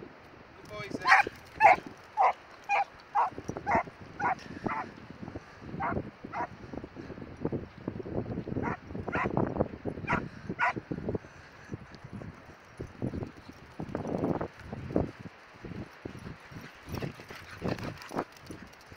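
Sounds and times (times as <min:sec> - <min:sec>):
dogs barking and yipping: 0:01.0 - 0:04.9, 0:05.8 - 0:06.5, 0:08.6 - 0:09.3, 0:10.1 - 0:10.8.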